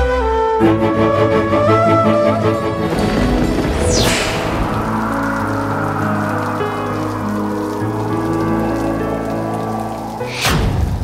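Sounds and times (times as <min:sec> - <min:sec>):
slow music score: 0:00.0 - 0:11.0
steady rain: 0:01.6 - 0:11.0
falling swish: 0:02.3 - 0:11.0.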